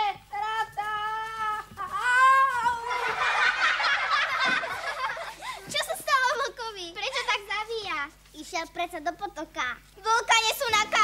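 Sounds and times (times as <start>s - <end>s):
high voice crying out: 0.0s - 3.0s
children laughing and chattering: 0.0s - 8.2s.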